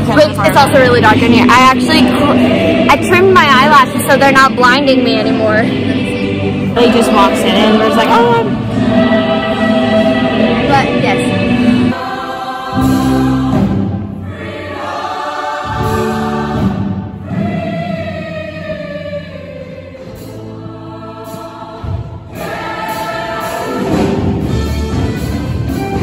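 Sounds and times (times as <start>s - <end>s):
choir singing in harmony: 0.0s - 26.0s
instrumental accompaniment: 0.0s - 26.0s.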